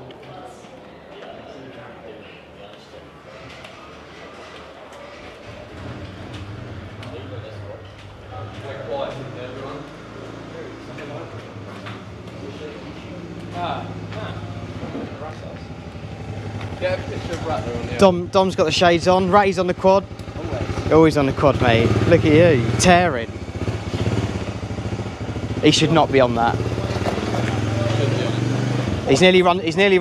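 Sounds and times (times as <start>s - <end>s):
scattered voices: 0.0s - 23.4s, 25.3s - 30.0s
quad bike engine at low revs: 5.4s - 29.7s.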